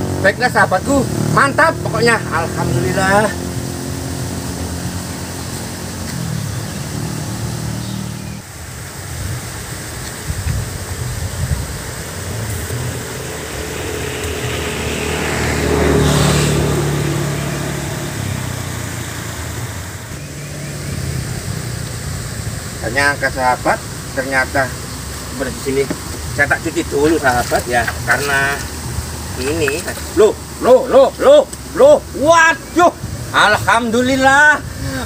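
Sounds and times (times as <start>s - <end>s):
vehicle passing: 0.0s - 8.6s, 11.5s - 35.0s
road traffic: 0.0s - 35.0s.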